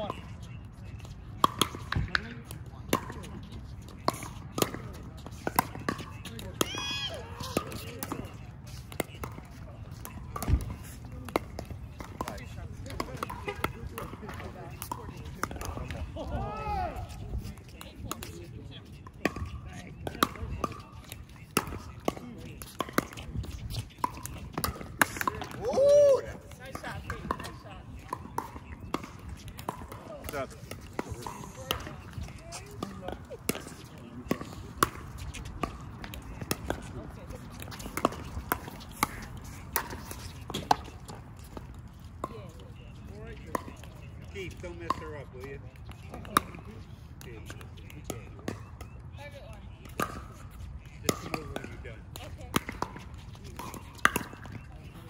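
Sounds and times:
paddles hitting ball: 0:19.2 - 0:42.4, 0:49.9 - 0:55.0.

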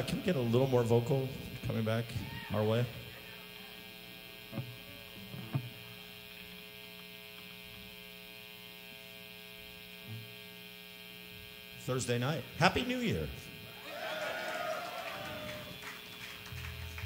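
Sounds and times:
electrical mains hum: 0:00.0 - 0:17.0.

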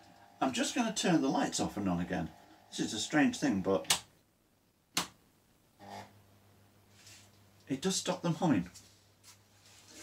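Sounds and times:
fluorescent tubes buzzing: 0:00.0 - 0:04.0, 0:05.8 - 0:06.4.

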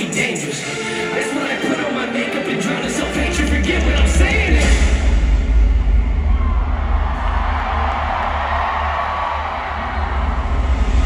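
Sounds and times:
bass-heavy live concert music: 0:00.0 - 0:11.0
crowd noise: 0:00.0 - 0:11.0.

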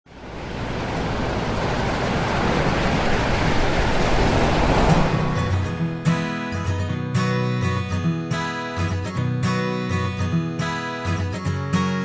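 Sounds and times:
ocean surf rushing: 0:00.1 - 0:06.8
acoustic guitar music: 0:04.9 - 0:12.0.

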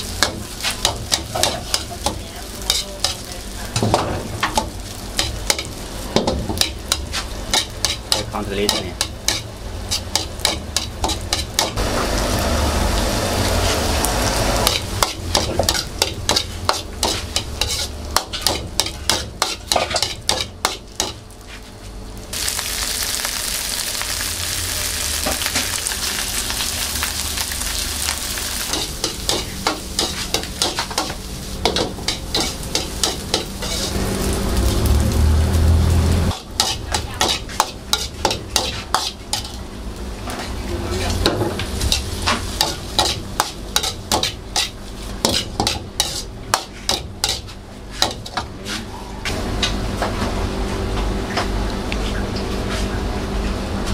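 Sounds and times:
loud steady sizzle: 0:00.0 - 0:48.4
ladle scraping a steel wok: 0:14.6 - 0:21.1, 0:28.6 - 0:34.1, 0:40.4 - 0:48.9.

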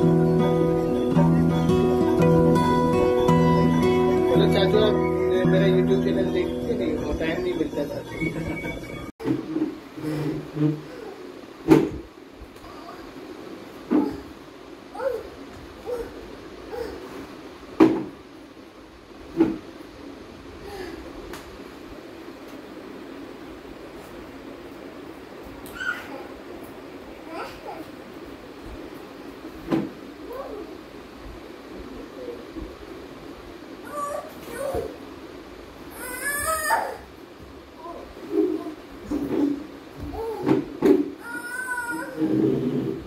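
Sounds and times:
plastic chair scraping on stone floor: 0:09.2 - 0:11.0, 0:38.3 - 0:39.7, 0:42.1 - 0:43.0
toddler whining: 0:10.8 - 0:11.3, 0:14.9 - 0:17.2, 0:25.7 - 0:26.4, 0:30.2 - 0:30.8, 0:33.8 - 0:35.0, 0:35.9 - 0:37.1, 0:40.0 - 0:42.5
chair bumps: 0:38.4 - 0:41.2.

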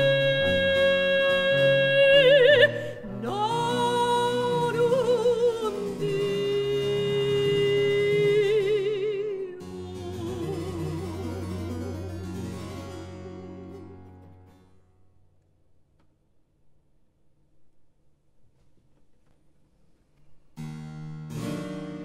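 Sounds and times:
woman singing with vibrato: 0:00.0 - 0:14.0
bowed bass: 0:00.0 - 0:14.9.

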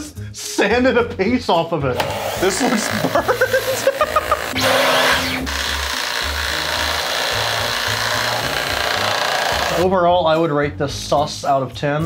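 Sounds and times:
background music with low beat: 0:00.0 - 0:12.0
vacuum cleaner running: 0:04.2 - 0:09.8.

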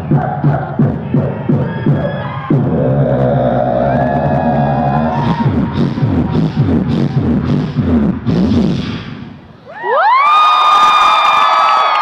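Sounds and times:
beatboxing vocal beats: 0:00.0 - 0:09.5
low vocal drone: 0:02.6 - 0:09.4.

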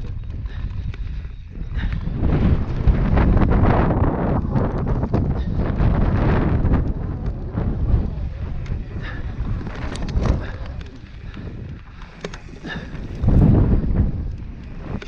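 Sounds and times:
bike rattling clicks: 0:00.0 - 0:15.0
bike tyres on dirt trail: 0:00.0 - 0:15.0
wind buffeting microphone: 0:00.0 - 0:15.0.

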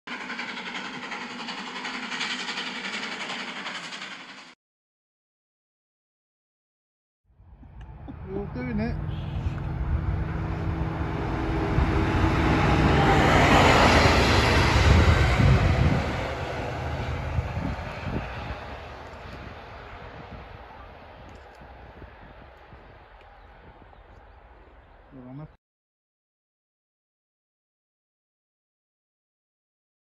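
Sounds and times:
diesel locomotives passing: 0:00.1 - 0:04.6, 0:07.4 - 0:25.5.

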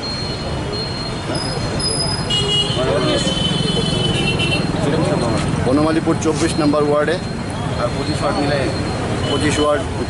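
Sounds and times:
street traffic noise: 0:00.0 - 0:10.0
people talking nearby: 0:00.6 - 0:10.0.

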